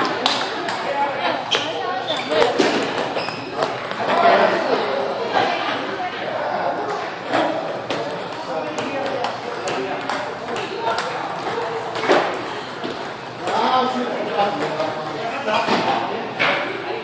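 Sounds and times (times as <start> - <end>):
table tennis balls clicking: 0.0 - 5.8, 6.8 - 15.3.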